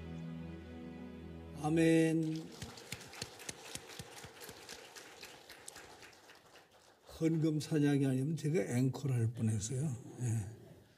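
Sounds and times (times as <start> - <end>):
many hands clapping: 2.1 - 7.5.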